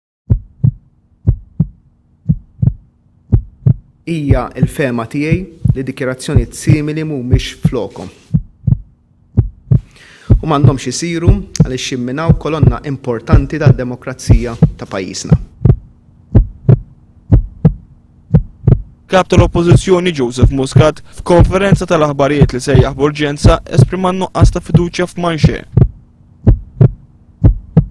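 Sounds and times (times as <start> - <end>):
faint steady hum: 0.3 - 27.9
heartbeat double thumps: 0.3 - 27.9.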